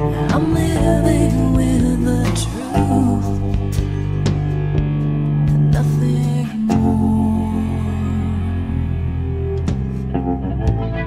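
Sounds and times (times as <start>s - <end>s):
guitar chords: 0.0s - 11.0s
sustained bass line: 0.0s - 11.0s.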